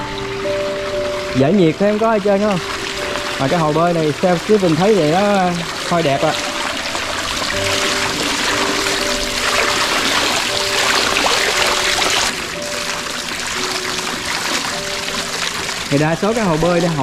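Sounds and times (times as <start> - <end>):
soft background music: 0.0 - 17.0
water splashing over pool edge: 0.0 - 17.0.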